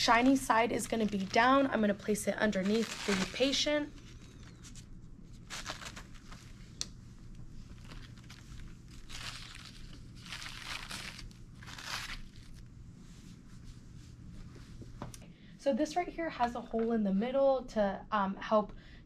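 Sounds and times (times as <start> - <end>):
paper and plastic crinkling: 0.0 - 6.7, 7.6 - 12.6
low steady hum: 0.0 - 19.0.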